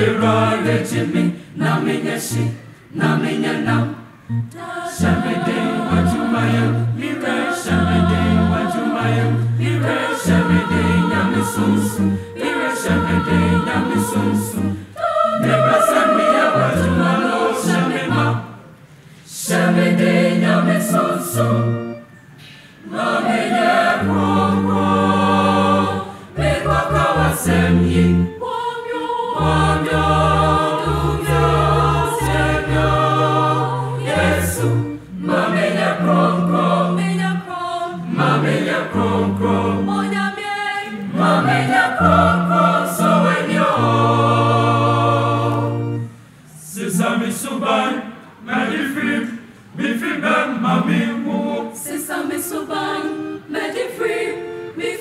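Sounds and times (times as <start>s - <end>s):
children's choir singing: 0.0s - 55.0s.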